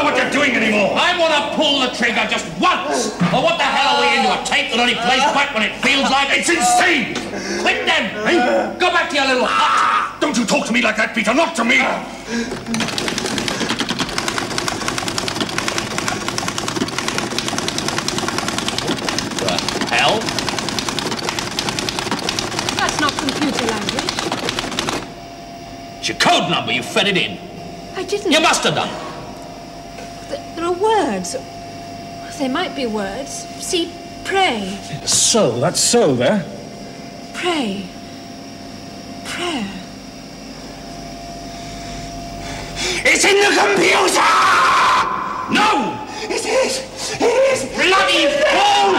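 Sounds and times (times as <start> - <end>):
electronic hum and hiss: 0.0 - 47.0
printer chattering: 12.5 - 25.2.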